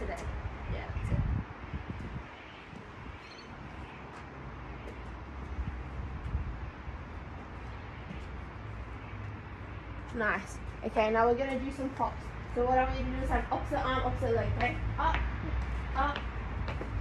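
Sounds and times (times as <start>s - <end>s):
wind rumble on microphone: 0.0s - 7.7s, 10.3s - 17.0s
faint outdoor background noise: 0.0s - 17.0s.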